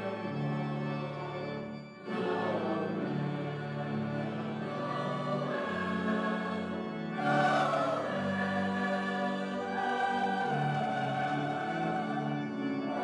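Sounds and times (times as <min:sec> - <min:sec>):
choir and congregation singing: 0:00.0 - 0:13.0
pipe organ: 0:00.0 - 0:13.0.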